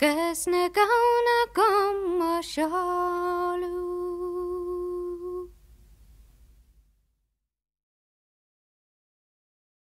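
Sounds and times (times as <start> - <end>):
faint hiss: 0.0 - 7.2.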